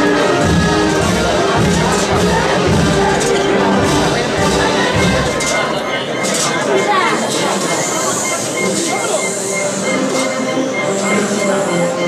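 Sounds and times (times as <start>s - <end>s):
crowd chatter: 0.0s - 12.0s
wind band playing march: 0.0s - 12.0s.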